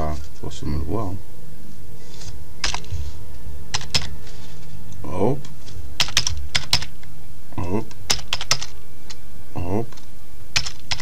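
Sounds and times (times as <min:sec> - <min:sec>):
computer keyboard keys clicking: 0:03.8 - 0:04.1, 0:06.0 - 0:06.9, 0:08.1 - 0:08.8, 0:10.6 - 0:11.0.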